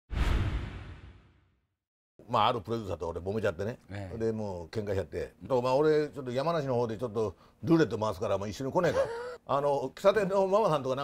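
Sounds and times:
whooshing hit with low end: 0.1 - 1.5.

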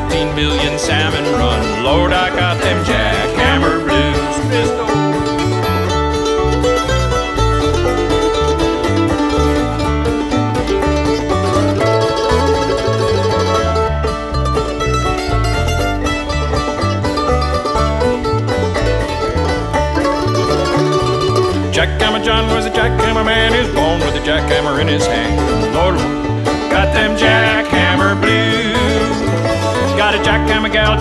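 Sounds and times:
banjo: 0.0 - 31.0
guitar: 0.0 - 31.0
mandolin: 0.0 - 31.0
steady bass line: 0.0 - 31.0.

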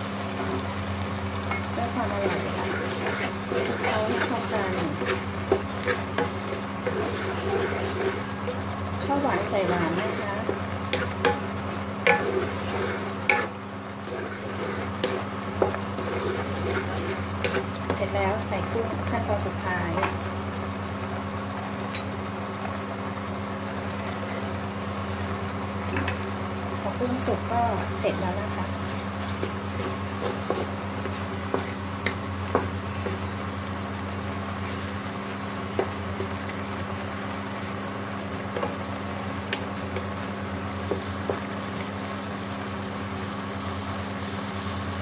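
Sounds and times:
electric hob humming: 0.0 - 45.0
light sizzle: 0.0 - 45.0
wooden spatula scraping wok: 1.8 - 20.2, 27.0 - 37.3
spatula knocking on pan: 11.0 - 11.5, 31.4 - 33.2.

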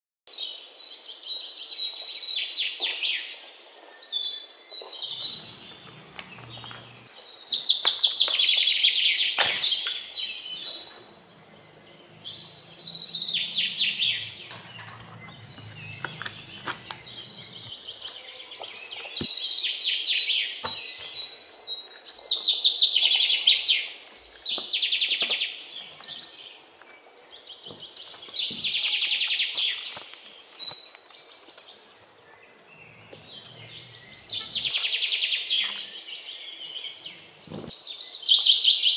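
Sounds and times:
bird song trilled phrases: 0.4 - 26.6, 27.3 - 38.9.

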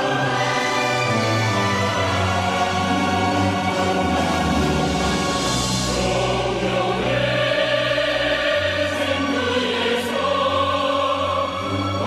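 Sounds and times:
choir singing: 0.0 - 12.0
orchestral accompaniment: 0.0 - 12.0.

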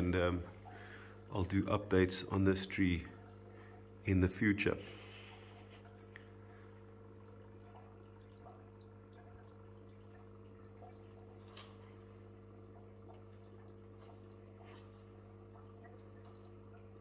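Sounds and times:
aquarium pump humming: 0.0 - 17.0
soft water drips: 0.0 - 17.0.

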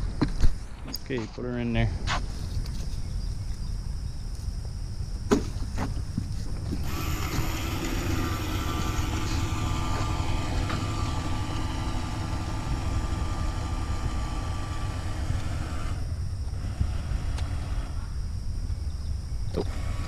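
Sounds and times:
steady low rumble: 0.0 - 20.0
toy boat motor whining: 6.8 - 18.1, 19.5 - 20.0.

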